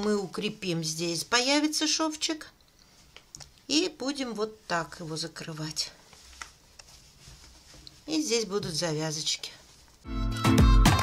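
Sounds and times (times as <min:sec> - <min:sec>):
fabric rustling: 0:02.8 - 0:10.1.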